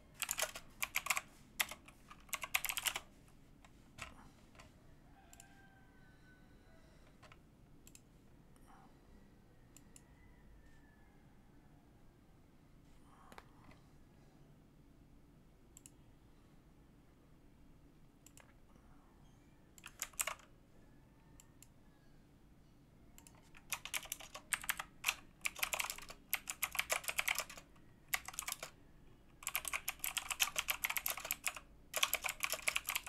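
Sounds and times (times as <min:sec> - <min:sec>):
typing on computer keyboard: 0:00.2 - 0:03.1, 0:19.8 - 0:20.5, 0:23.2 - 0:28.8, 0:29.4 - 0:33.0.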